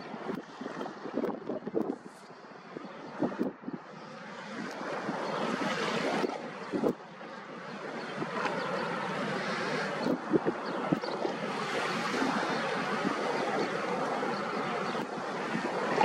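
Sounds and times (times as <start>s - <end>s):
wind on microphone: 0.0s - 16.0s
small waves washing: 4.0s - 16.0s.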